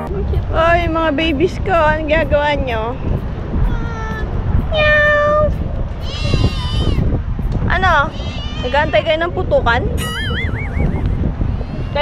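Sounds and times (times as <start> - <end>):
cats meowing: 4.8 - 7.1, 8.0 - 9.3.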